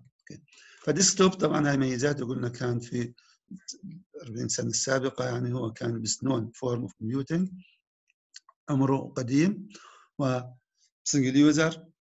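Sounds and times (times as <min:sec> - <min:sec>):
man lecturing: 0:00.3 - 0:07.7, 0:08.7 - 0:10.5, 0:11.1 - 0:12.0.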